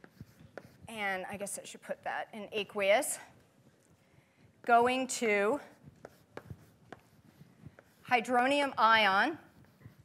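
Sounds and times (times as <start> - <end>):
chalk writing on blackboard: 0.0 - 1.2, 5.7 - 10.0.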